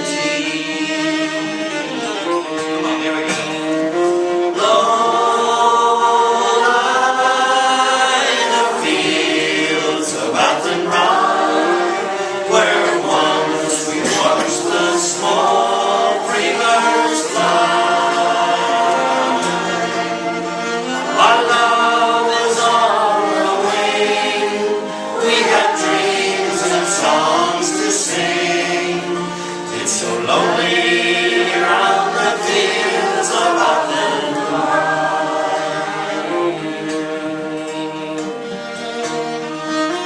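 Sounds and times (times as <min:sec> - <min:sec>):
acoustic guitar: 0:00.0 - 0:40.0
bowed fiddle: 0:00.0 - 0:40.0
group singing folk ballad: 0:00.0 - 0:40.0.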